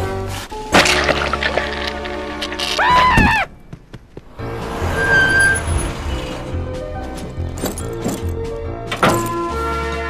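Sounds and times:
music: 0.0 - 3.5, 4.2 - 10.0
car running: 1.2 - 9.7.

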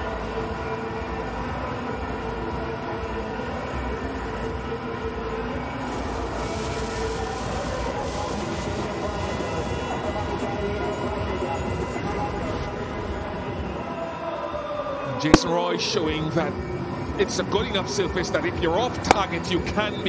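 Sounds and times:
stadium crowd din: 5.6 - 17.8
jet cannon rushing hiss: 5.8 - 10.8.

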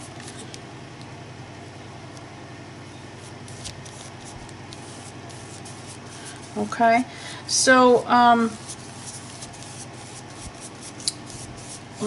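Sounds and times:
low hum with hiss: 0.0 - 12.0.

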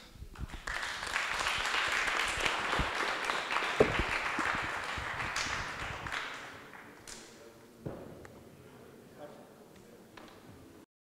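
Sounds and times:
audience applauding: 0.4 - 7.0.

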